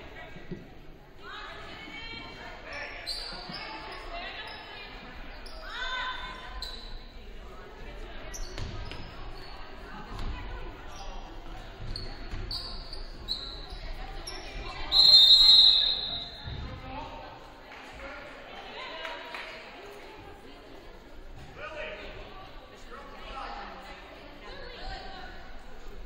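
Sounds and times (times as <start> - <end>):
players' voices: 0.0 - 26.0
sneakers squeaking on hardwood: 8.3 - 9.6, 11.7 - 14.8
referee whistle: 14.8 - 16.4.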